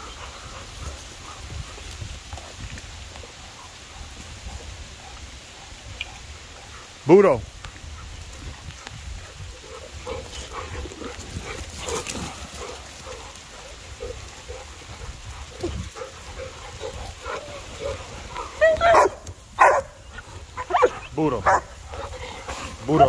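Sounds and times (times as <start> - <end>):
dogs making breathy vocal sounds: 0.0 - 7.0, 7.8 - 19.0, 19.6 - 23.0
sharp dog calls: 9.6 - 23.0.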